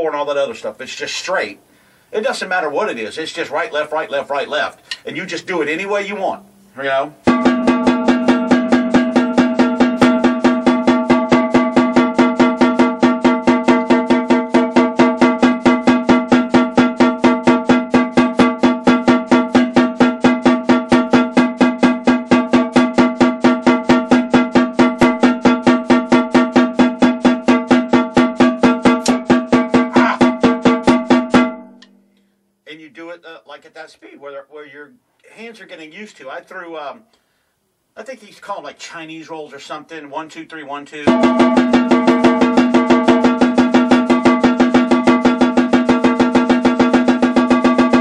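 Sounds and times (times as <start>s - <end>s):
snare drum strokes: 6.3s - 31.6s, 41.1s - 48.0s.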